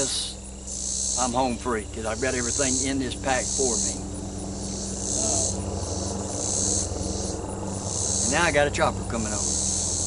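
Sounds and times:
helicopter drone: 0:00.0 - 0:10.0
insects buzzing: 0:00.0 - 0:10.0.

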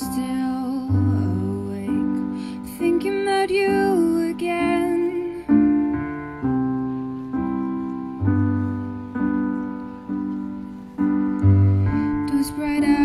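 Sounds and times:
woman singing a gentle song: 0:00.0 - 0:06.4, 0:11.6 - 0:13.0
piano chords: 0:00.0 - 0:13.0.

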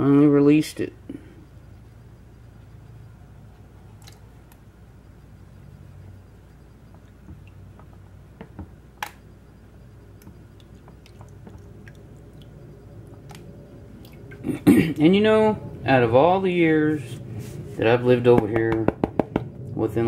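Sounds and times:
low steady hum: 0:00.0 - 0:20.0.

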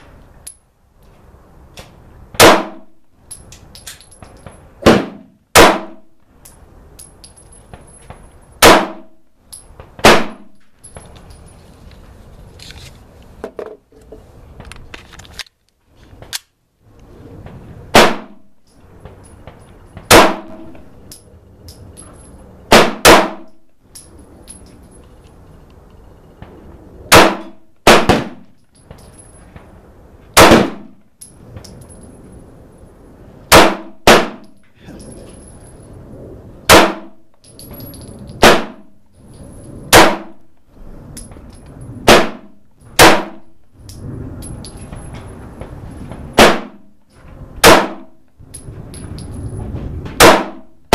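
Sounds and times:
pistol shots with ringing decay: 0:02.4 - 0:03.0, 0:04.8 - 0:06.1, 0:08.6 - 0:09.2, 0:10.0 - 0:10.6, 0:17.9 - 0:18.4, 0:20.1 - 0:20.8, 0:22.7 - 0:23.5, 0:27.1 - 0:28.4, 0:30.4 - 0:31.0, 0:33.5 - 0:34.5, 0:36.7 - 0:37.2, 0:38.4 - 0:38.9, 0:39.9 - 0:40.4, 0:42.1 - 0:43.5, 0:46.4 - 0:46.8, 0:47.6 - 0:48.1, 0:50.2 - 0:50.7.

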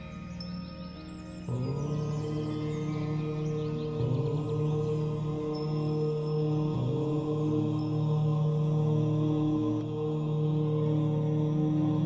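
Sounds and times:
chanted mantra on drone notes: 0:01.5 - 0:12.0.

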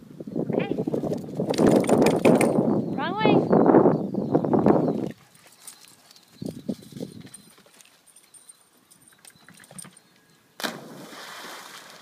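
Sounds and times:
dog splashing into water: 0:10.6 - 0:12.0.

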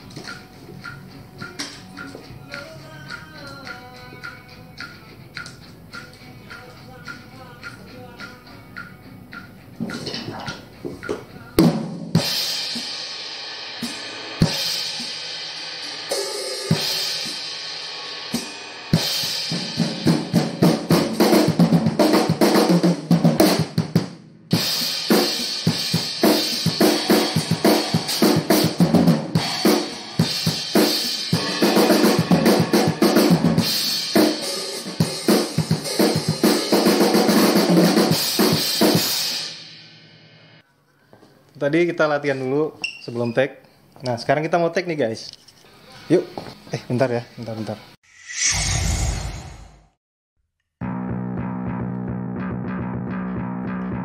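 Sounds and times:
acoustic drum kit playing: 0:09.8 - 0:39.8.

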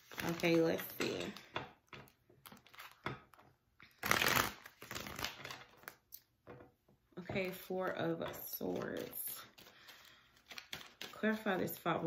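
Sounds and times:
cards shuffling: 0:04.0 - 0:06.0, 0:08.6 - 0:11.8.

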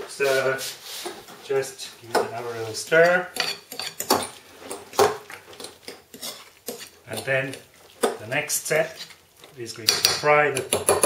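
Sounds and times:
spoon stirring thick batter: 0:01.0 - 0:11.0.

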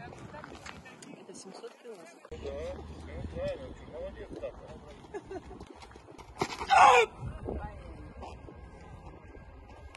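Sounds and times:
person shouting: 0:06.7 - 0:07.1.

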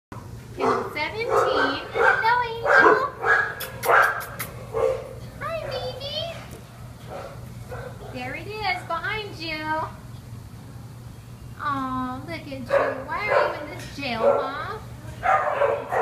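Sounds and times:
dog barking: 0:00.6 - 0:05.9, 0:07.1 - 0:08.2, 0:12.7 - 0:13.6, 0:14.2 - 0:16.0.

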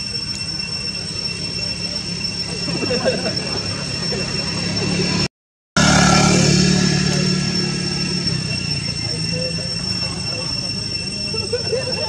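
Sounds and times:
faint indistinct voices: 0:00.0 - 0:05.3, 0:06.1 - 0:12.0
high-pitched whine: 0:00.0 - 0:12.0.

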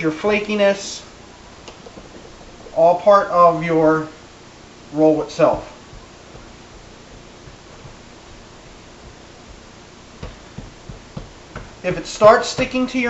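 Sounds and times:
faint room hiss: 0:00.0 - 0:13.0
soft dull thumps of dough: 0:05.4 - 0:13.0.

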